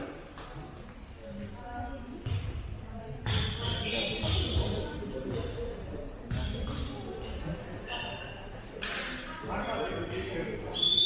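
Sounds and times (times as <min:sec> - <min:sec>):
voices in a hall: 0:00.0 - 0:11.0
ball bouncing on hall floor: 0:02.2 - 0:07.4.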